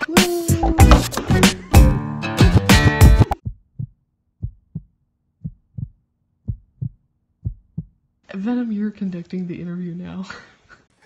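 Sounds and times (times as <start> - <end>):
heartbeat thumps: 3.1 - 8.0.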